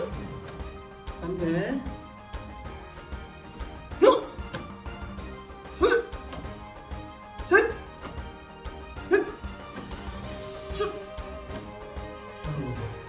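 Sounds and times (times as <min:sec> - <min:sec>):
background music: 0:00.0 - 0:13.0
man shouting: 0:07.4 - 0:07.8.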